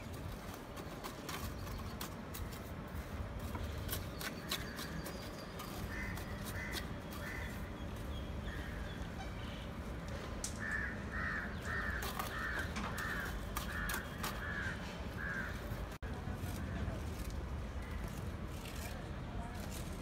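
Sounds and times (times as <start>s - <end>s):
crow cawing: 5.9s - 7.6s, 10.6s - 15.7s.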